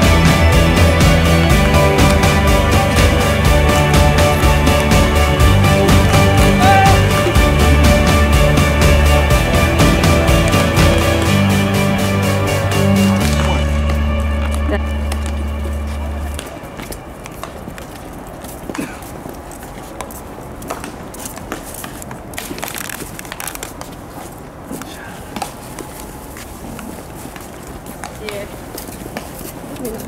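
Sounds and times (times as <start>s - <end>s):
background music: 0.0s - 17.8s.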